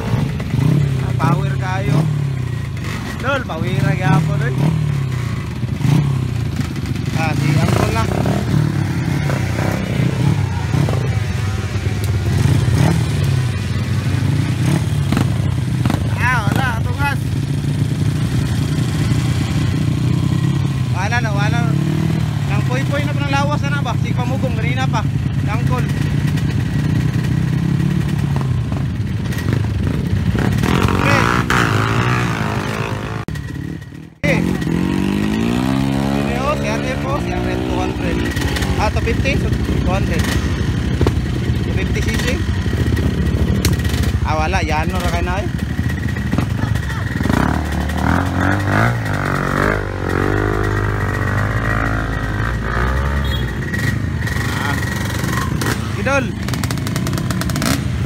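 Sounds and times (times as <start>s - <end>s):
dirt bike engines running: 0.0s - 58.0s
people talking: 1.0s - 2.0s, 3.2s - 4.6s, 7.1s - 8.4s, 16.0s - 17.3s, 22.5s - 25.9s, 30.9s - 31.6s, 34.2s - 34.8s, 36.0s - 40.3s, 41.7s - 42.4s, 44.2s - 45.5s, 46.4s - 47.2s, 54.4s - 56.4s.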